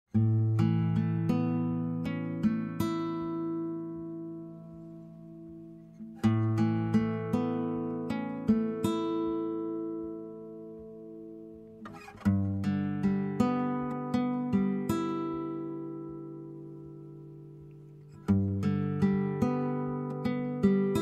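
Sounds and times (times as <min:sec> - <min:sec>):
acoustic guitar plucking: 0:00.1 - 0:21.0.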